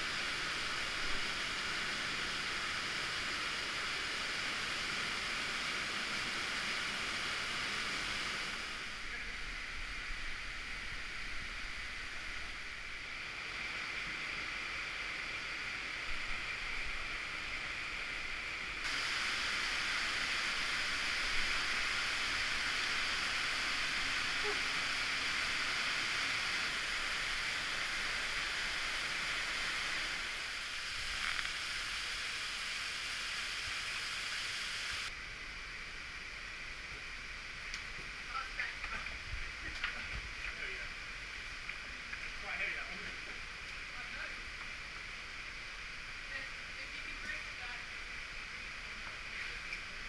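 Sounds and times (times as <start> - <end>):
rushing cave stream: 0.0 - 35.2.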